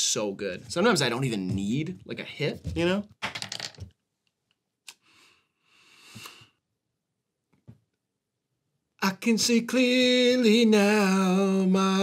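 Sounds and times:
breathy hissing through inhaler: 5.0 - 6.6.

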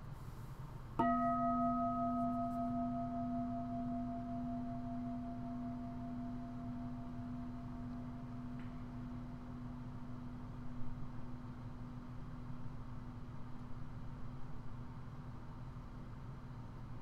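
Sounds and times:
meditation bell ringing: 1.0 - 12.2.

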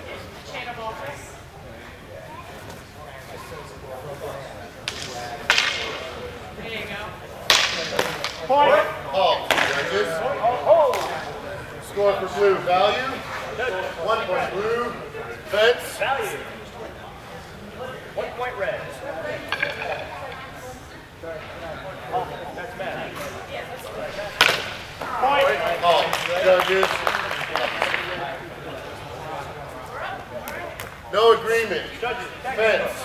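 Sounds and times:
voices talking: 0.0 - 33.0.

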